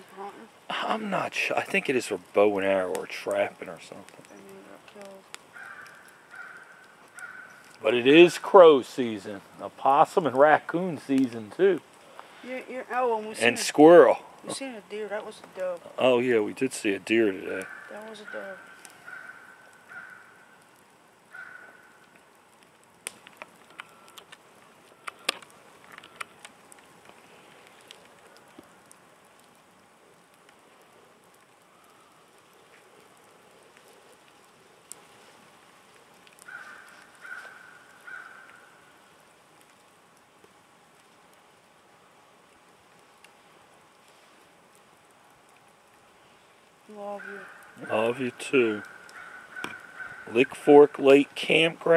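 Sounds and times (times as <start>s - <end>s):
campfire crackling and popping: 0.0s - 51.9s
distant bird calls: 4.2s - 8.2s, 17.3s - 22.2s, 36.4s - 39.2s, 47.1s - 50.7s.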